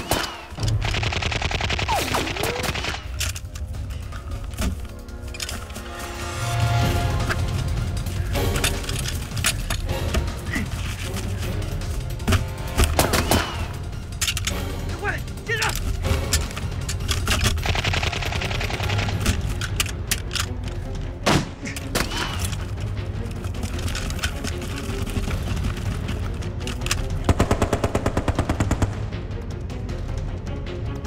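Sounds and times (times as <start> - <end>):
machine-gun fire: 0.0 - 3.1, 27.3 - 29.1
dramatic music score: 0.0 - 31.0
rifle shots: 27.3 - 29.1.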